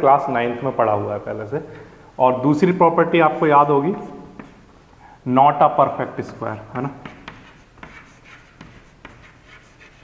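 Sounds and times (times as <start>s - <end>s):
chalk tapping on board: 4.4s - 4.6s, 6.2s - 10.0s
chalk scratching on chalkboard: 6.9s - 10.0s.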